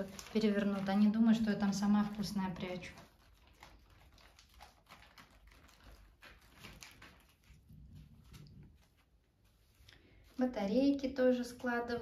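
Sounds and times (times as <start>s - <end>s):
plastic bags crinkling: 0.0s - 11.9s.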